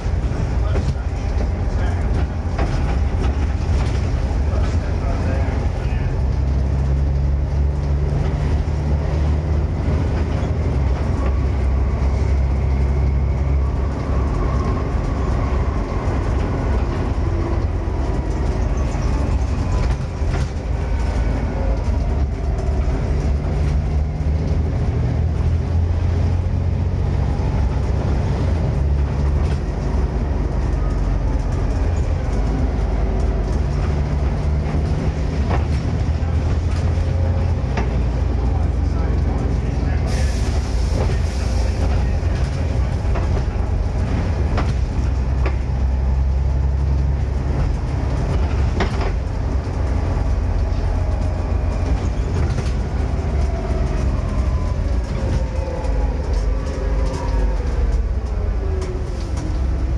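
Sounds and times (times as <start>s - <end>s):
bus body knocks and rattles: 0.0s - 38.8s, 41.0s - 55.6s
bus diesel engine droning: 0.0s - 59.9s
falling whine of bus slowing: 0.0s - 59.9s.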